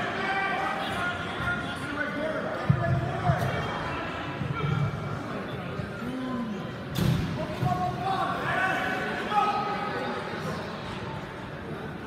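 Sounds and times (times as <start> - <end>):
spectators and coaches calling out: 0.0 - 12.0.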